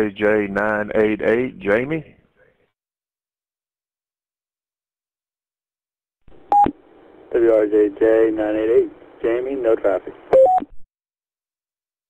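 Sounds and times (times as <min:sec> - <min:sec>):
radio hiss: 0:06.8 - 0:10.4.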